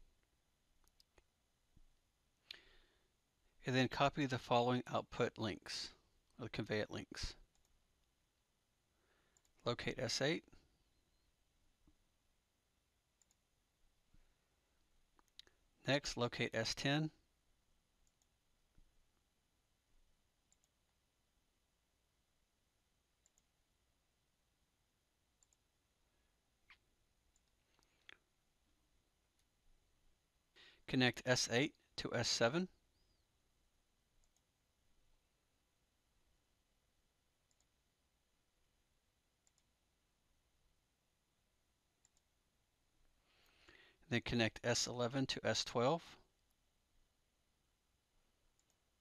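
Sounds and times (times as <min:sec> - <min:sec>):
computer mouse clicks: 0:13.2 - 0:13.4, 0:20.5 - 0:20.8, 0:23.2 - 0:23.5, 0:25.4 - 0:25.6, 0:26.7 - 0:28.2, 0:37.5 - 0:37.8, 0:39.4 - 0:39.7, 0:48.6 - 0:48.8
faint computer mouse clicks: 0:39.4 - 0:39.7.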